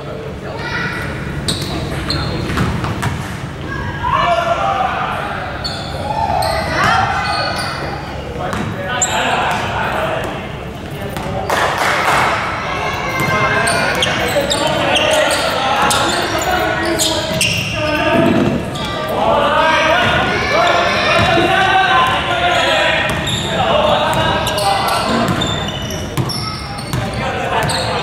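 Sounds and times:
shouts and chatter: 3.5 - 10.7, 11.3 - 28.0
basketball bouncing on gym floor: 8.5 - 8.8, 24.1 - 24.5, 25.1 - 27.9.

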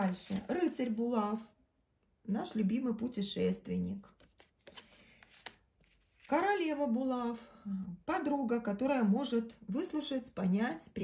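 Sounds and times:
cards sliding: 4.1 - 6.3.

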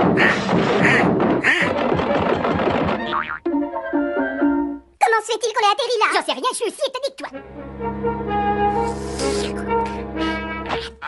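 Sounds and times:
cartoon orchestral music: 7.3 - 11.0.

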